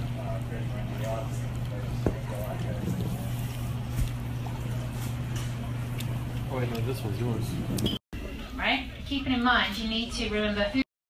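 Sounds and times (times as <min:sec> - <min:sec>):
steady low hum: 0:00.0 - 0:09.4.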